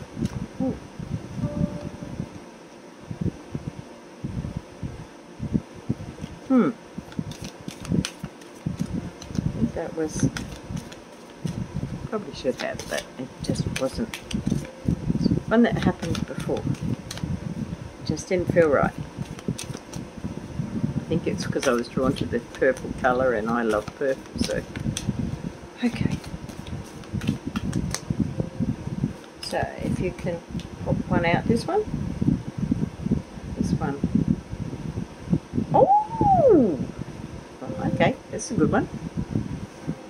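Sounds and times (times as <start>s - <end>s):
fan hum: 0.0s - 40.0s
steady background whir: 0.0s - 40.0s
cards being shuffled: 7.0s - 11.6s, 12.3s - 14.8s, 15.8s - 17.3s, 18.8s - 20.1s, 21.4s - 25.1s, 25.8s - 28.1s
cards knocking and clicking: 7.3s - 9.4s, 10.2s - 11.3s, 12.5s - 14.7s, 15.8s - 17.2s.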